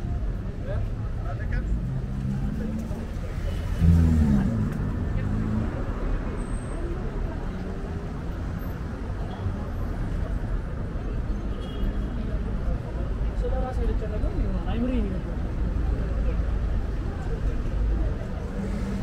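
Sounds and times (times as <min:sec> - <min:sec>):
street traffic rumble: 0:00.0 - 0:19.0
loud passing vehicle: 0:01.8 - 0:07.4.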